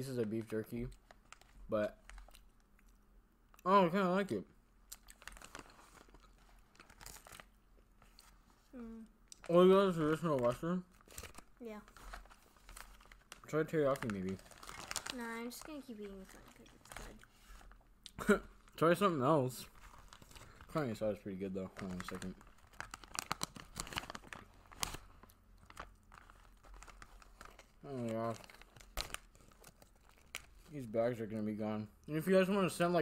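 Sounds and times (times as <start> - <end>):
plastic bag crinkling: 5.0 - 8.4, 9.4 - 17.8, 18.6 - 30.9.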